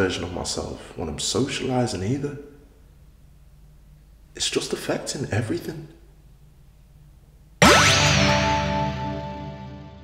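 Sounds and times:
rising sweep sound effect: 0:07.6 - 0:09.5.

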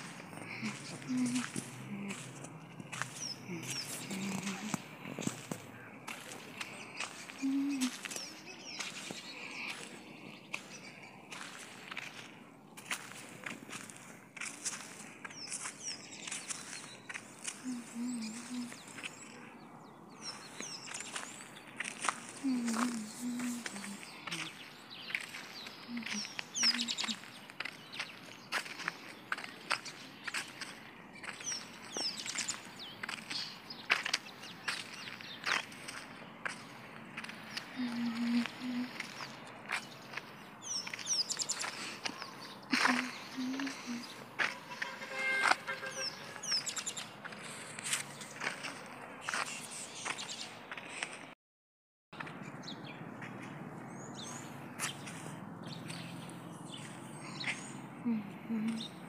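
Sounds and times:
birds chirping: 0:00.0 - 0:51.3, 0:52.2 - 0:59.0
footsteps in sandals on dirt: 0:00.0 - 0:51.4, 0:52.2 - 0:58.8.

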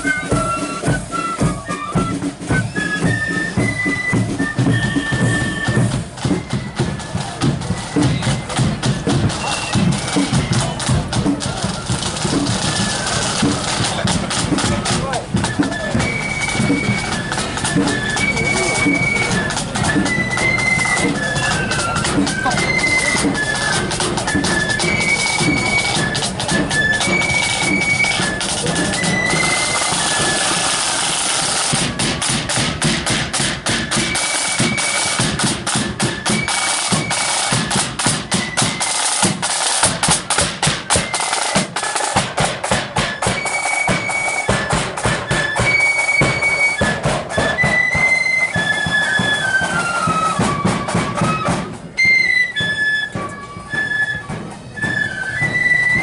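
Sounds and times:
flutes playing high melody: 0:00.0 - 0:56.0
marching flute band playing: 0:00.0 - 0:56.0
rattling snare drums: 0:00.0 - 0:56.0.

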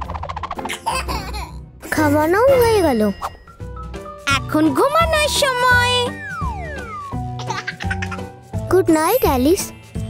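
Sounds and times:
light children's music: 0:00.0 - 0:10.0
baby giggling: 0:07.4 - 0:08.3.

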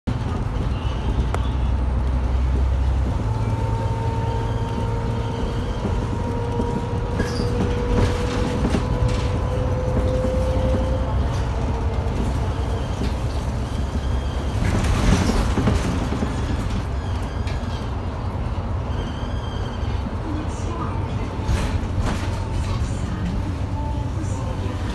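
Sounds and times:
bus engine rumble: 0:00.0 - 0:24.9.

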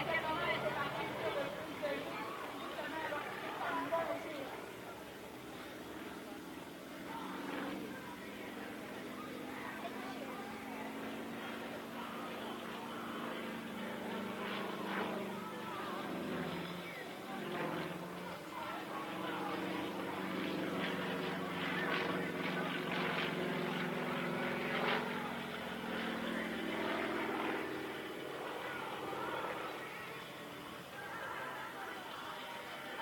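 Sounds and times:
propeller plane engine drone: 0:00.0 - 0:33.0.

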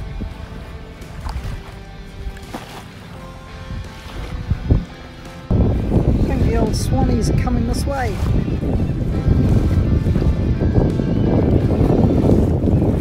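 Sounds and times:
distant jet ski engine droning: 0:00.0 - 0:11.7
wind rumble on microphone: 0:00.0 - 0:13.0
woman speaking: 0:06.3 - 0:08.2.

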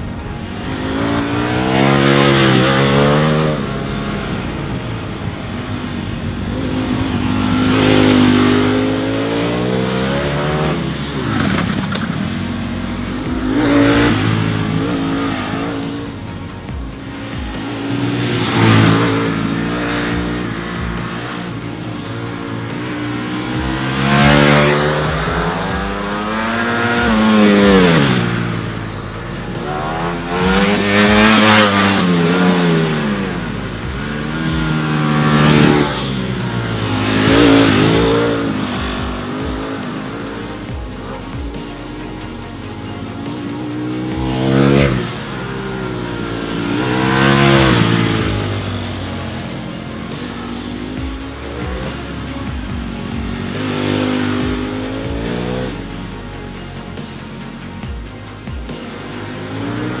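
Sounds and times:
motorcycle engine revving: 0:00.0 - 1:00.0.

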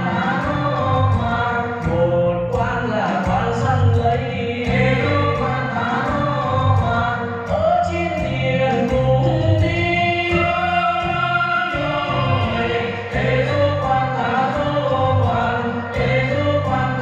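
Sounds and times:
instrumental accompaniment: 0:00.0 - 0:17.0
man singing folk-style song: 0:00.0 - 0:17.0.

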